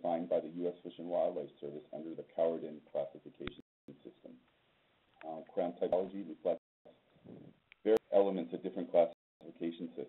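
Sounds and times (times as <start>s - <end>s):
man speaking in a lecture: 0.0s - 4.4s, 5.2s - 6.6s, 7.9s - 10.0s.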